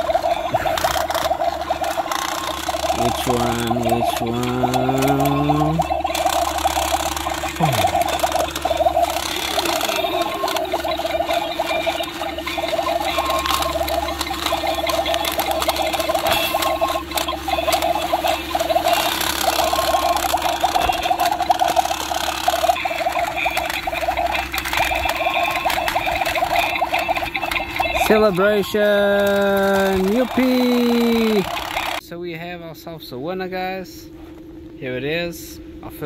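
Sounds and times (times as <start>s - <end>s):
toy bubble machine buzzing: 0.0s - 32.0s.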